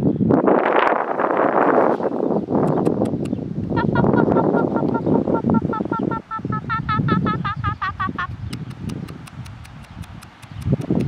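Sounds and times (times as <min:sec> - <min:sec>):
wind buffeting microphone: 0:00.0 - 0:11.0
bird call notes: 0:02.7 - 0:10.8.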